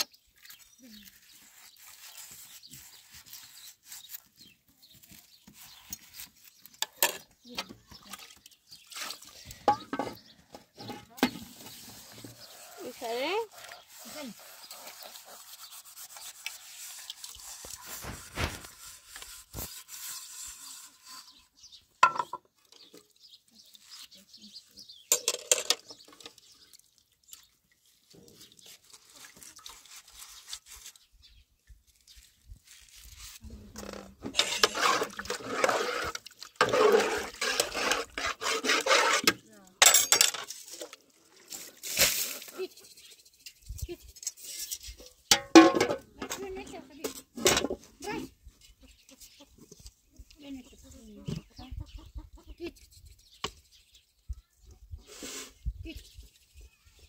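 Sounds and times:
metal utensil clinking on pot: 39.8 - 40.6.

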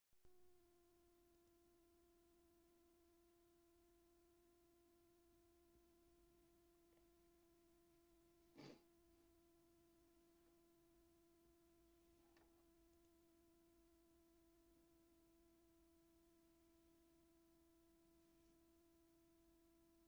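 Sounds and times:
faint steady tone: 9.0 - 20.0.

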